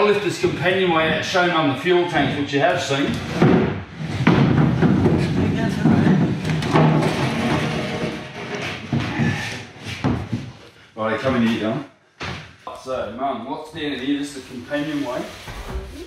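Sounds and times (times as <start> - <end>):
sharp knocks: 3.3 - 10.5.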